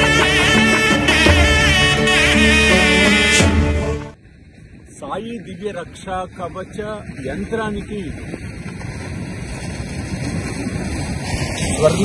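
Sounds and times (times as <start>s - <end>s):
wind buffeting microphone: 4.2s - 12.0s
surf rushing on beach: 5.0s - 12.0s.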